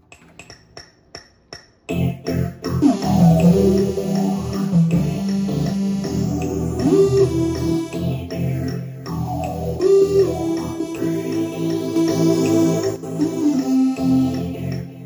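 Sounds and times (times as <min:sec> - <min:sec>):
synthesizer keyboard chords and melody: 0:01.9 - 0:15.0.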